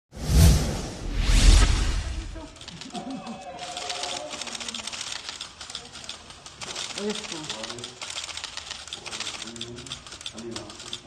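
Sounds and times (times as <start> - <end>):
whoosh sound effects: 0.1 - 2.4.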